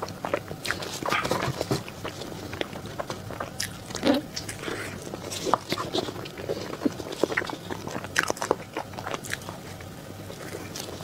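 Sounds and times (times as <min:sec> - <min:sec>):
chewing soft cake: 0:00.0 - 0:11.0.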